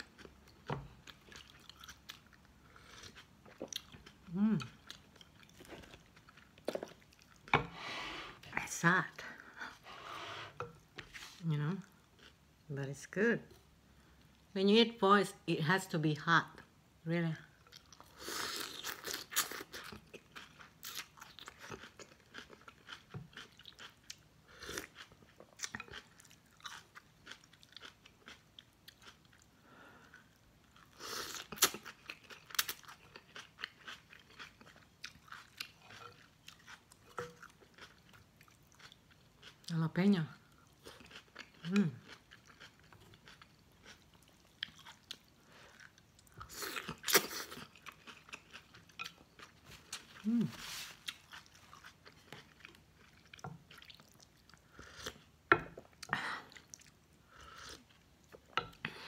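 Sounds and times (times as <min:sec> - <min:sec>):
person humming: 0:50.2 - 0:50.6.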